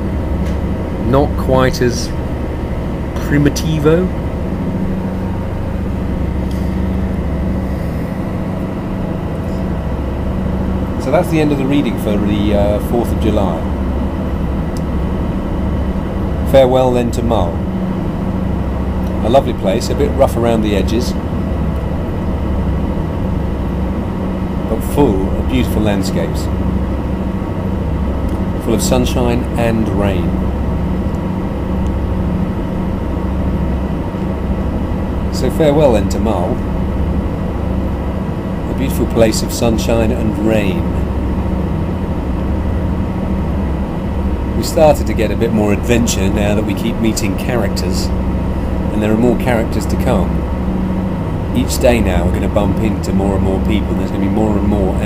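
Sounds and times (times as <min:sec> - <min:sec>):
ferry engine droning: 0:00.0 - 0:55.0.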